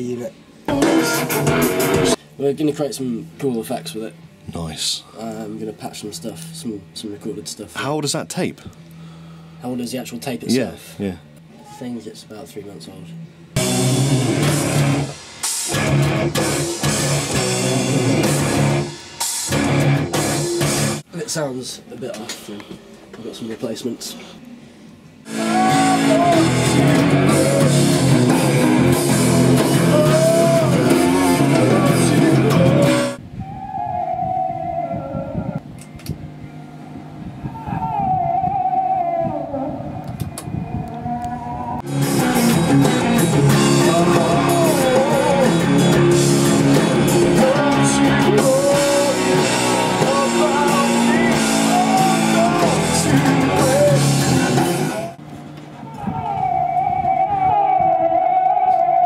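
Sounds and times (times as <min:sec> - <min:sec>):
heavy rock music with guitars: 0:00.7 - 0:02.2, 0:13.6 - 0:21.0, 0:25.3 - 0:33.2, 0:41.8 - 0:55.2
high gliding guitar lead: 0:00.7 - 0:02.2, 0:13.6 - 0:21.0, 0:25.3 - 0:33.2, 0:40.6 - 0:55.2.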